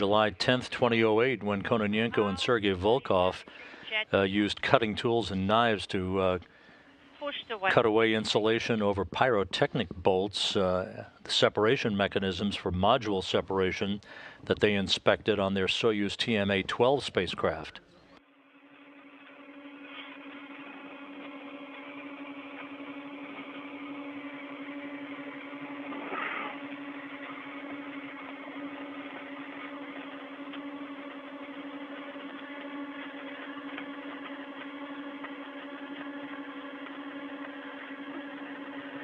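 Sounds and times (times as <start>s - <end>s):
radio hiss: 0.0s - 18.2s, 18.9s - 39.0s
steady low hum: 0.0s - 39.0s.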